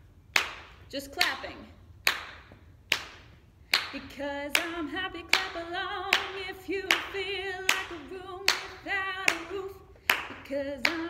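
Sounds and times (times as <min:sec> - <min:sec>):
hand claps with room echo: 0:00.3 - 0:11.0.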